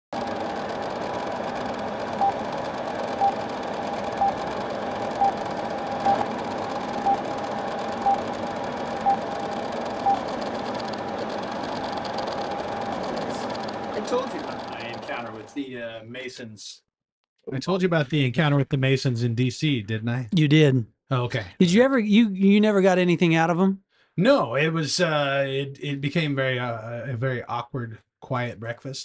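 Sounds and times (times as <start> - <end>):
film projector whir and crackle: 0.2 - 15.6
short beeps: 6.0 - 6.2.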